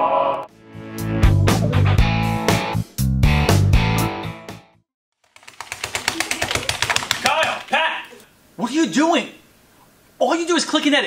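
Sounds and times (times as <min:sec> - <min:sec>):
fast typing on keyboard: 0:05.2 - 0:08.2
person speaking: 0:05.9 - 0:09.4.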